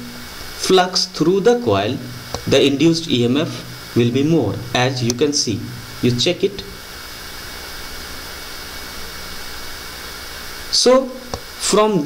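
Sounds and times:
faint high steady whine: 0.0 - 12.0
recording hiss and hum: 0.0 - 12.0.

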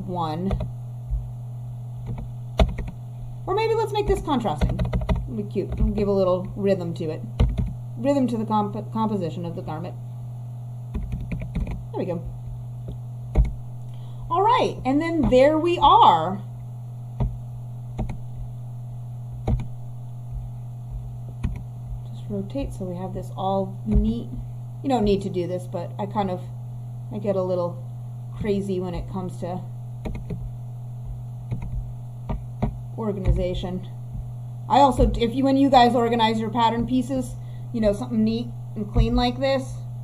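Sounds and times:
electrical hum: 0.0 - 40.0
computer clicks: 2.0 - 3.0, 4.6 - 6.0, 7.4 - 7.8, 10.9 - 11.8, 12.9 - 13.6, 18.0 - 18.2, 19.4 - 19.7, 21.4 - 21.7, 30.0 - 30.4, 31.5 - 33.4
keyboard key presses: 2.0 - 3.0, 4.6 - 6.0, 7.4 - 7.8, 10.9 - 11.8, 13.4 - 13.6, 18.0 - 18.2, 19.4 - 19.7, 21.4 - 21.6, 30.0 - 30.4, 31.5 - 33.5.

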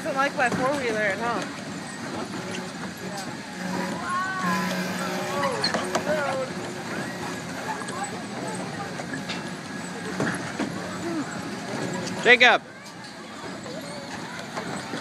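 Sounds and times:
kiddie ride low hum: 0.0 - 15.0
children calling out: 3.6 - 6.4.

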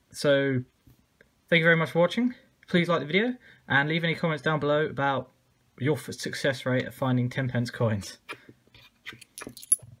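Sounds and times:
coins clicking and clinking: 9.2 - 9.9.

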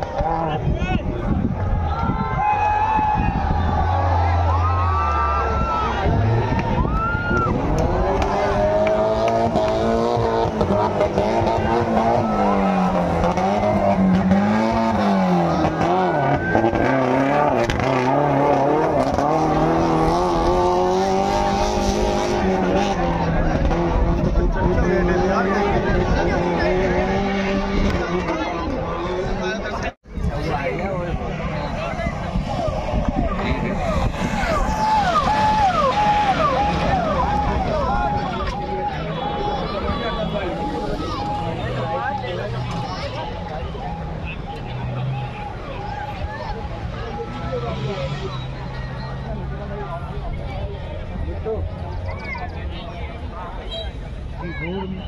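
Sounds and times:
off-road vehicle engine revving: 0.0 - 1.8, 3.2 - 53.6
crowd chatter: 0.0 - 55.0.

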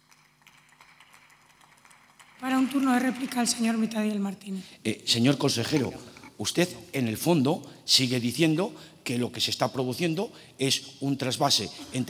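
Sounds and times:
people clapping: 0.0 - 4.2.

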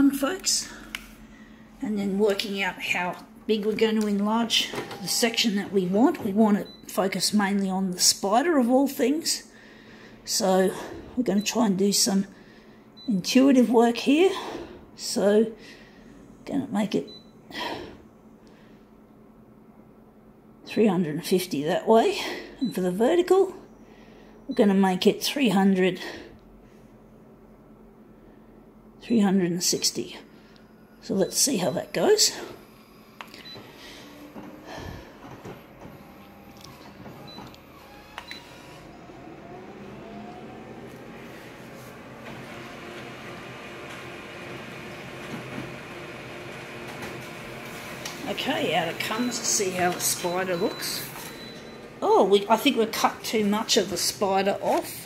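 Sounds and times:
photocopier motors whirring: 0.8 - 8.1, 30.3 - 55.0
photocopier clicks: 46.8 - 48.3.

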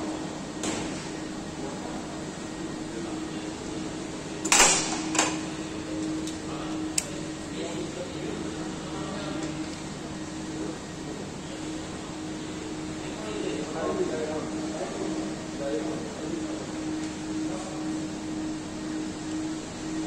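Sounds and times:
workshop hum: 0.0 - 20.0.

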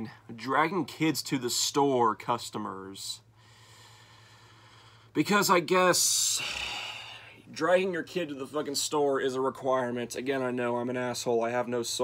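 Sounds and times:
low electrical hum: 0.0 - 12.0
person breathing through nose: 3.4 - 5.1, 6.4 - 7.4.

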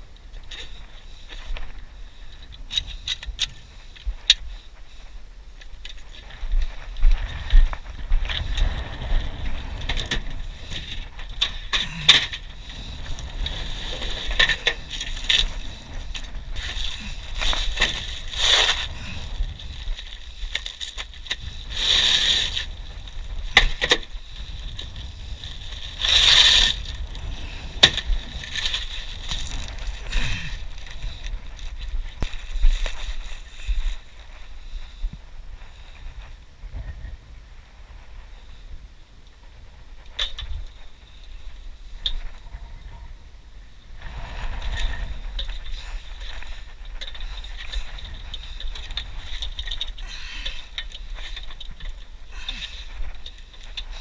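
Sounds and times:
rustling and scraping of materials: 0.0 - 54.0
steady low rumble: 0.0 - 54.0.

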